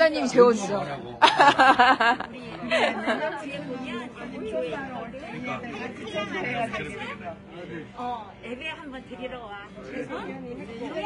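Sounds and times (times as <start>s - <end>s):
people talking over one another: 2.2s - 11.0s.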